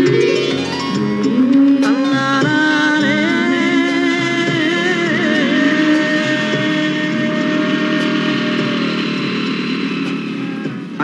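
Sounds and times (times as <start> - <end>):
background music: 0.0 - 11.0
motorcycle engine running: 0.0 - 11.0.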